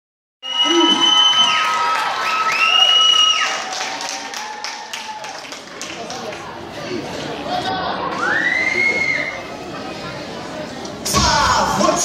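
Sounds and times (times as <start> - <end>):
spectators cheering and shouting: 0.4 - 5.5, 11.0 - 12.0.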